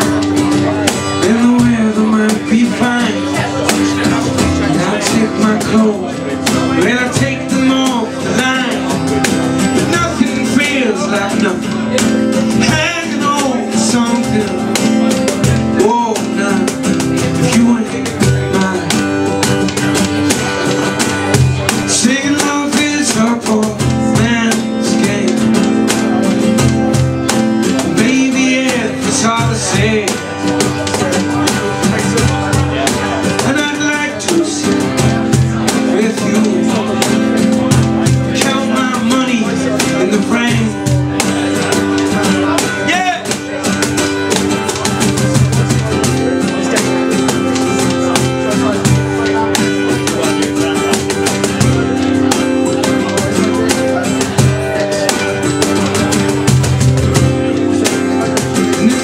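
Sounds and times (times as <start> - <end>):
acoustic guitar strumming: 0.0 - 59.0
man singing: 0.0 - 59.0.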